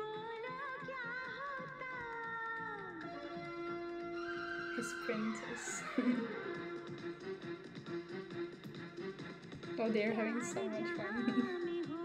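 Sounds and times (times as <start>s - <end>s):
soft backing music: 0.0s - 12.0s.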